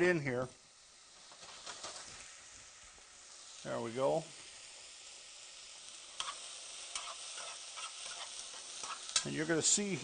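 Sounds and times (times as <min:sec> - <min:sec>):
vegetables sizzling in a frying pan: 0:00.0 - 0:10.0.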